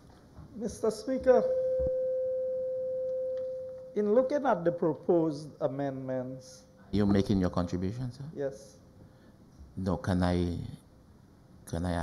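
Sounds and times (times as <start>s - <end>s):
microphone feedback ringing: 1.1s - 4.4s.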